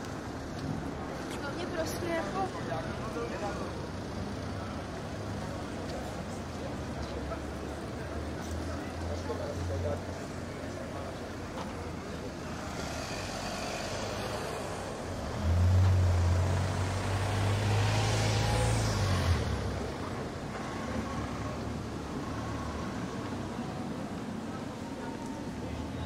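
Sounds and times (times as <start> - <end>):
city street traffic: 0.0 - 26.0
vehicle passing close by: 12.7 - 20.0.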